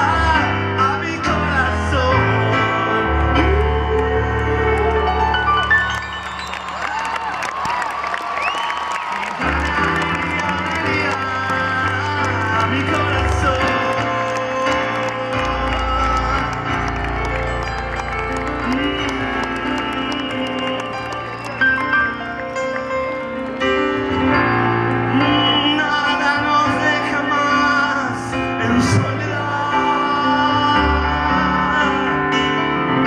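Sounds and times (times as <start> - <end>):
live band music with piano: 0.0 - 33.0
audience cheering and whooping: 4.7 - 24.3.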